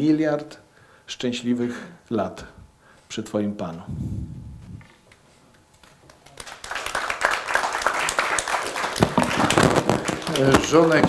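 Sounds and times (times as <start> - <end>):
audience applauding: 6.1 - 11.0.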